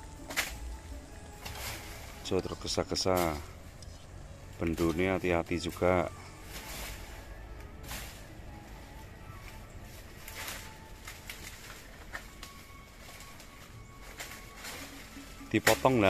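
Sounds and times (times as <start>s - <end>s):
dry leaves rustling and crackling: 0.0s - 16.0s.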